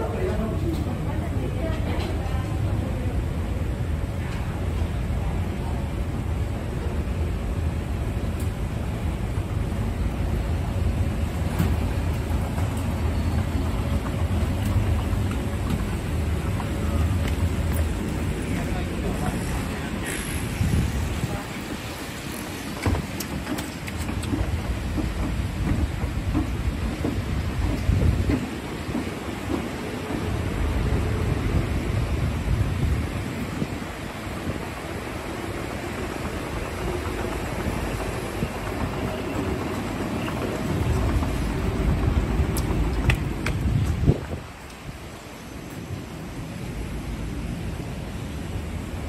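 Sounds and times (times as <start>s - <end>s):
steady rain: 0.0s - 49.0s
wind buffeting microphone: 0.4s - 45.2s.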